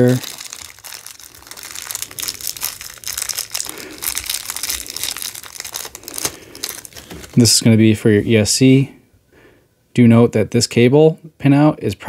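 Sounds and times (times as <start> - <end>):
plastic bag crinkling: 0.0 - 8.3.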